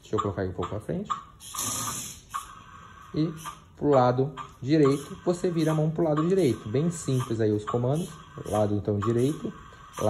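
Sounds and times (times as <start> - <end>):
toy car motors whirring: 1.4 - 3.7, 4.5 - 10.0.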